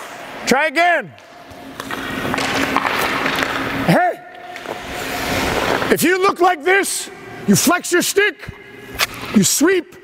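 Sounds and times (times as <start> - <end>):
steady low hum: 0.0 - 10.0
skates scraping on ice: 1.5 - 6.0.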